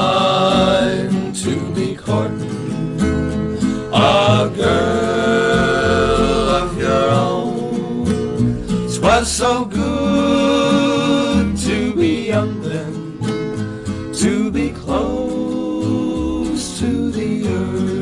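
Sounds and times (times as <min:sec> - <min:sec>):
male vocal harmony singing: 0:00.0 - 0:02.7, 0:03.6 - 0:13.2, 0:13.9 - 0:18.0
strummed acoustic guitars: 0:00.0 - 0:18.0.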